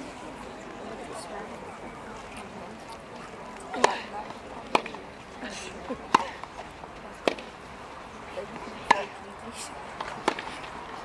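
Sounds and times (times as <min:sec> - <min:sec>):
background murmur: 0:00.0 - 0:11.0
racket striking tennis ball: 0:04.7 - 0:05.0, 0:06.1 - 0:06.5, 0:07.2 - 0:07.5, 0:08.8 - 0:09.1, 0:10.0 - 0:10.7.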